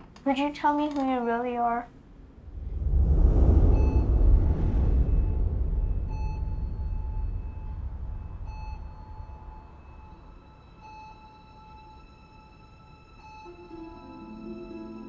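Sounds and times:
deep low rumble: 2.2 - 11.0
short electronic beep: 3.7 - 12.0.

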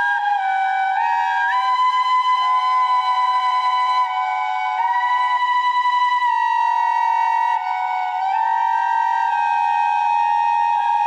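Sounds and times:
flute playing held notes: 0.0 - 11.0.

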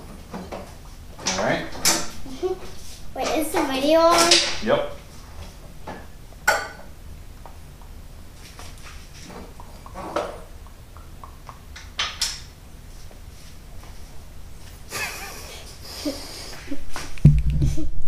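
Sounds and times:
low steady hum: 0.0 - 18.0
child talking: 2.2 - 4.6.

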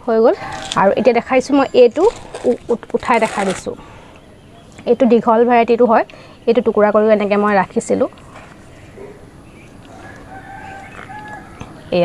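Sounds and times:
faint rooster crowing: 8.8 - 12.0.

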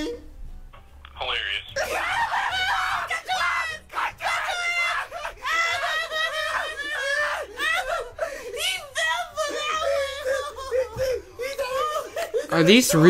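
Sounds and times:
cartoon voices laughing and shrieking: 1.8 - 13.0.

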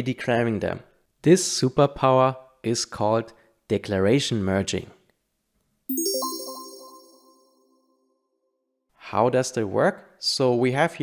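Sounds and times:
bright chime ding: 5.9 - 7.5.

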